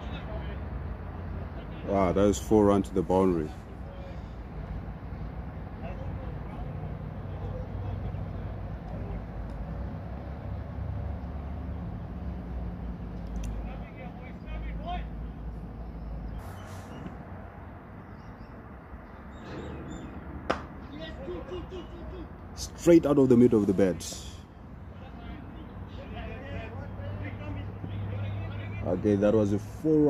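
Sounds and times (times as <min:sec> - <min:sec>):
distant players calling: 0:00.0 - 0:30.0
cricket bat hitting ball: 0:20.5 - 0:20.8.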